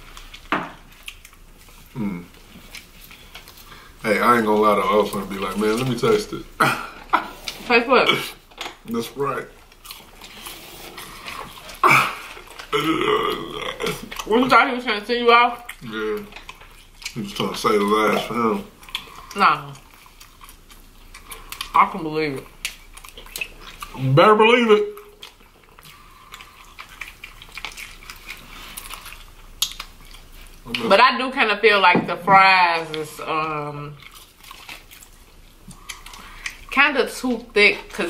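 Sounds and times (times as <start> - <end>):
chewing fried food: 0.0 - 31.7, 32.4 - 38.0
person burping: 6.6 - 7.3, 11.8 - 14.1.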